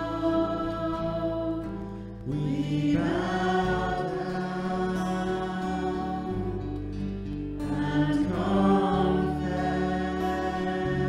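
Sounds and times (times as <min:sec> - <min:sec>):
voices singing: 0:00.0 - 0:11.0
worship band playing guitars: 0:00.0 - 0:11.0.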